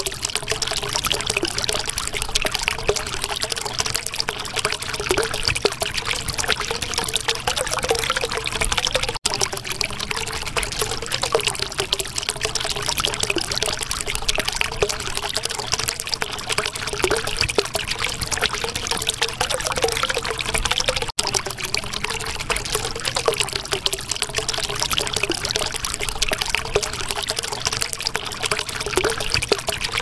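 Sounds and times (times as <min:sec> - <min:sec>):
water trickling and gurgling: 0:00.0 - 0:30.0.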